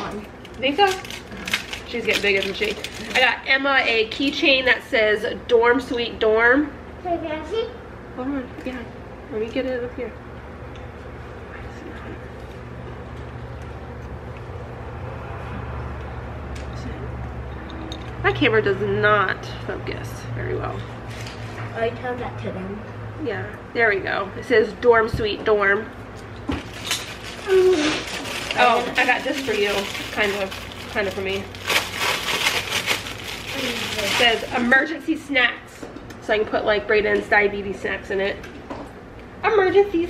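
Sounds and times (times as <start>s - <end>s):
steady low hum: 0.0s - 40.0s
plastic bag crinkling: 0.1s - 3.4s, 26.6s - 34.8s.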